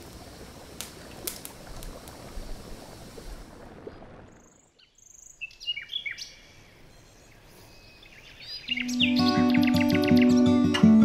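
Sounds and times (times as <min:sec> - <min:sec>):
birds chirping: 0:04.3 - 0:11.0
music of plucked notes: 0:08.8 - 0:11.0.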